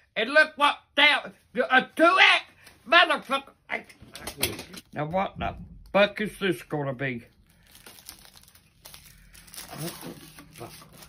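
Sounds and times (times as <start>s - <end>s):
poster crinkling and rustling: 7.3s - 11.0s.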